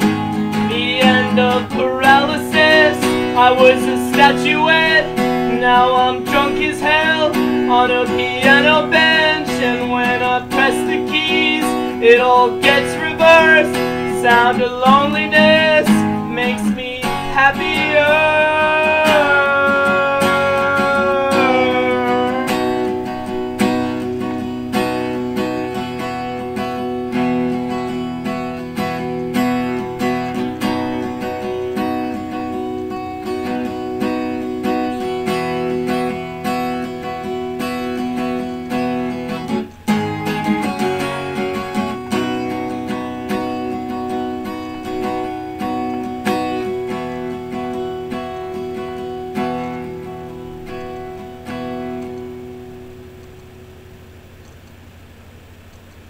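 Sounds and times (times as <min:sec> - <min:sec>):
acoustic guitar strumming: 0:00.0 - 0:56.0
faint hiss: 0:00.0 - 0:56.0.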